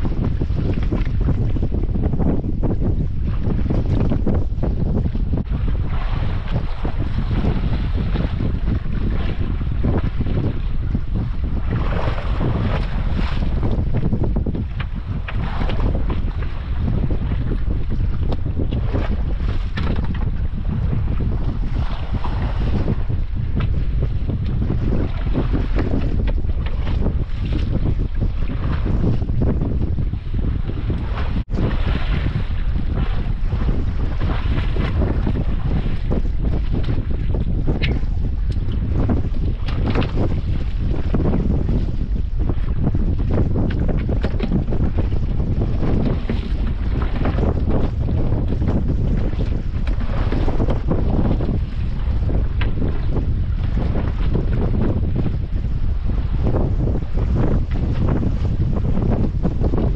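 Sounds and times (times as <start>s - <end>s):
water lapping against boat hull: 0.0s - 59.9s
wind rumbling on microphone: 0.0s - 59.9s.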